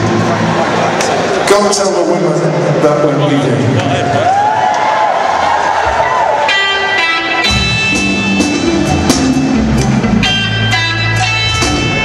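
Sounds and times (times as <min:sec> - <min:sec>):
electric guitar chord ringing: 0:06.5 - 0:12.0.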